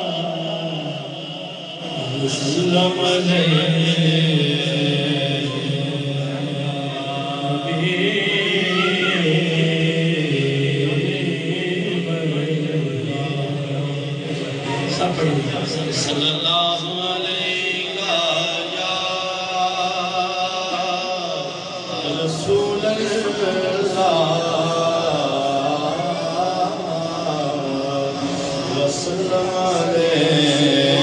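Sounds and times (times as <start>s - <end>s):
man singing over microphone: 0.0s - 31.0s.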